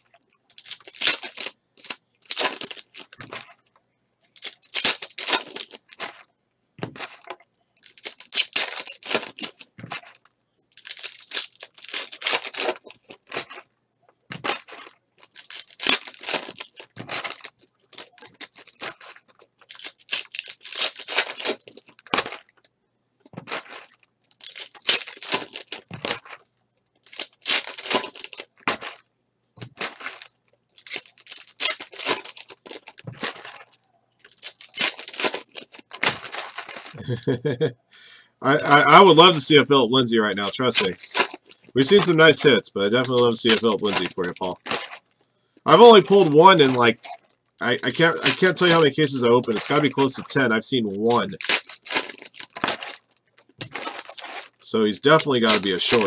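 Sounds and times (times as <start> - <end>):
plastic wrappers tearing and crinkling: 0.0 - 22.6, 23.2 - 37.1, 38.6 - 56.0.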